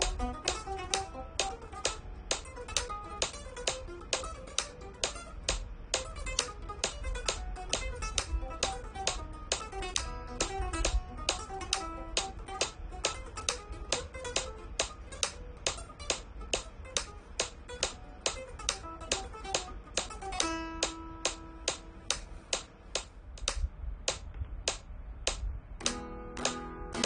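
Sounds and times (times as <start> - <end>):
flamenco guitar playing: 0.0 - 23.0, 25.8 - 27.0
strummed guitar chords: 0.0 - 23.2, 25.8 - 27.0
metronome clicking: 0.0 - 27.0.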